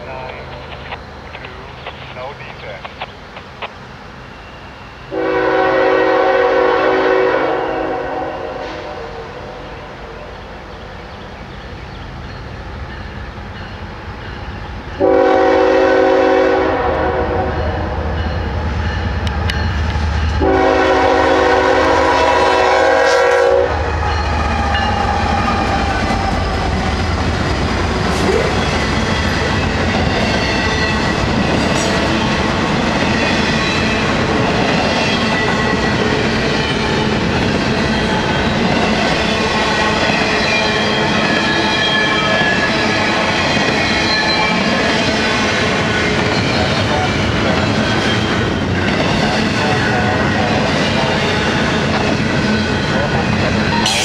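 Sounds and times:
wheels clickety-clack on rail: 0:00.0 - 0:03.8, 0:23.8 - 0:54.0
diesel locomotives rumbling: 0:00.0 - 0:54.0
locomotive horn blasts: 0:05.1 - 0:09.5, 0:15.0 - 0:17.8, 0:20.4 - 0:24.1.

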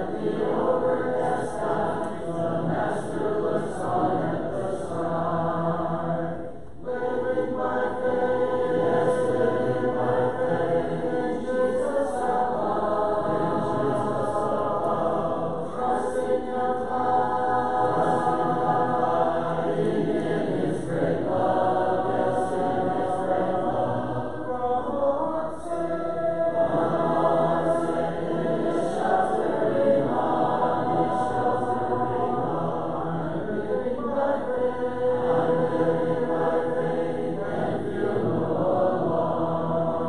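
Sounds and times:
congregation singing a hymn: 0:00.0 - 0:40.0.

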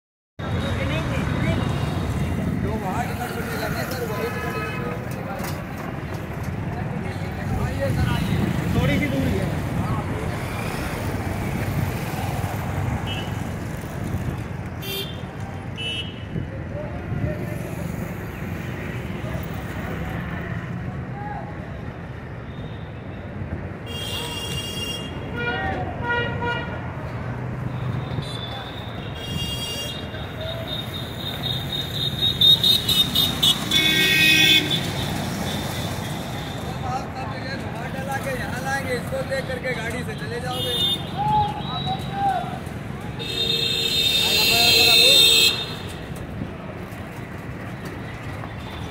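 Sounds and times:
traffic rumble: 0:00.4 - 0:48.9
vehicle horn: 0:30.7 - 0:34.8.

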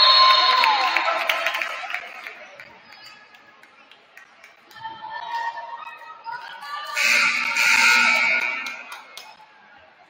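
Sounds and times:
scoreboard horn blast: 0:07.0 - 0:08.8.

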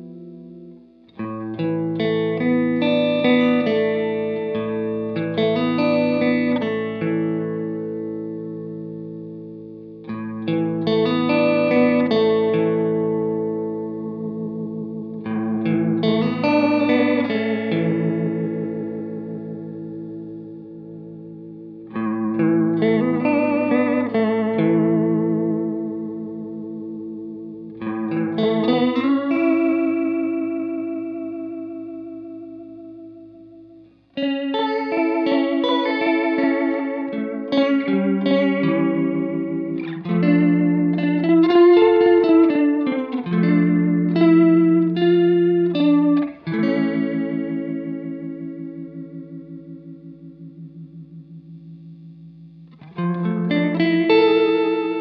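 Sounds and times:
electric guitar with modulation: 0:00.0 - 0:55.0.

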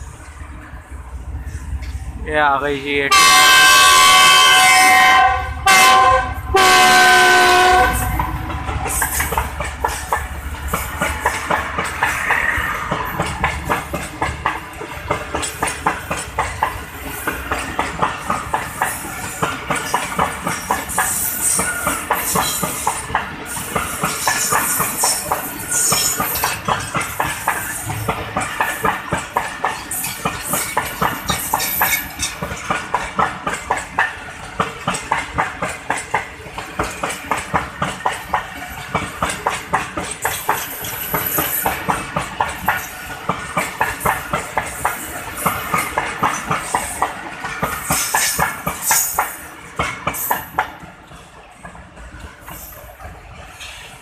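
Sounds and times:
train wheels clattering: 0:06.6 - 0:54.0.

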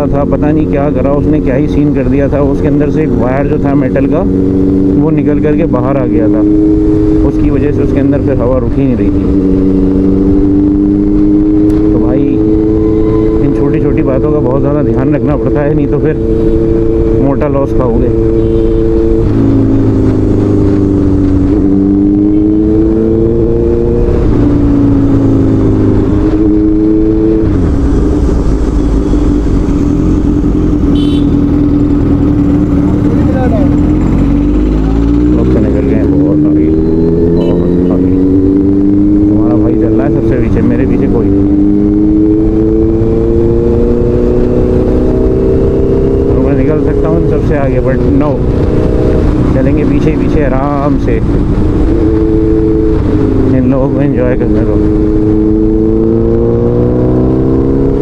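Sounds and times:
motorcycle engine accelerating: 0:00.0 - 0:58.0
wind noise rumble: 0:18.0 - 0:35.4, 0:36.8 - 0:58.0.

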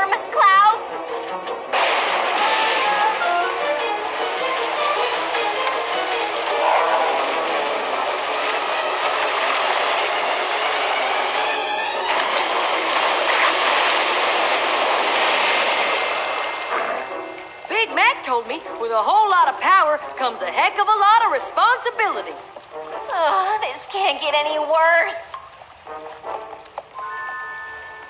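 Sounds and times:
heavy rain falling: 0:00.0 - 0:28.0
music score: 0:02.3 - 0:13.1.

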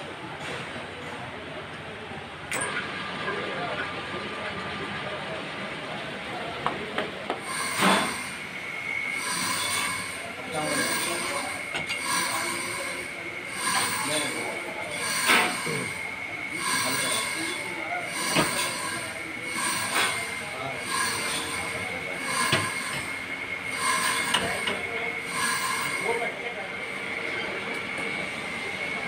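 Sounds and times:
steel blade scraping steel drum: 0:07.4 - 0:26.4.

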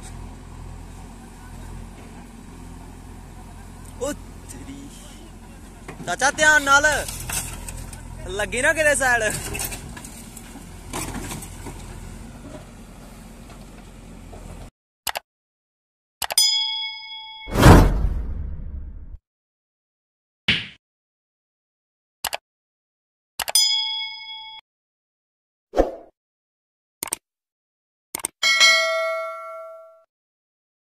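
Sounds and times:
diesel engine running: 0:00.0 - 0:14.7
brief loud noise: 0:17.5 - 0:19.2
bright bell chime: 0:28.4 - 0:30.1.

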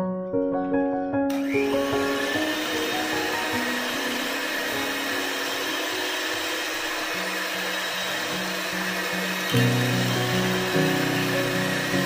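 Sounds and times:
background music: 0:00.0 - 0:12.0
electric hand mixer whisking: 0:01.3 - 0:12.0.

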